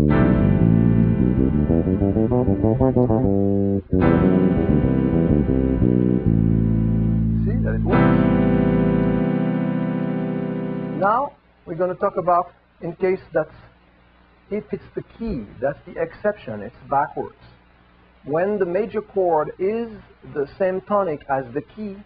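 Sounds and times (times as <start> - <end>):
solo electric bass guitar: 0.0 - 11.1.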